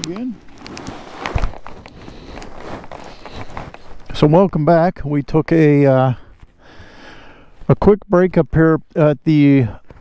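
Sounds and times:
camera handling rustling: 0:00.0 - 0:04.1.

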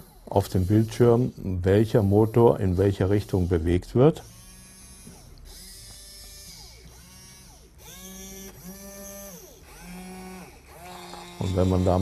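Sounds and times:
small electric motors whining: 0:00.0 - 0:12.0.

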